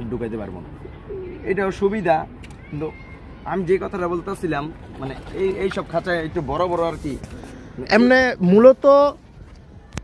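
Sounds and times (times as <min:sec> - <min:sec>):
pigeons cooing: 0:00.8 - 0:01.5, 0:04.4 - 0:06.2.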